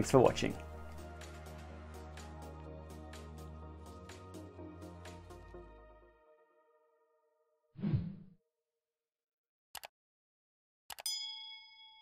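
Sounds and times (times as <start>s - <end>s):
notification bell ding: 11.0s - 12.0s.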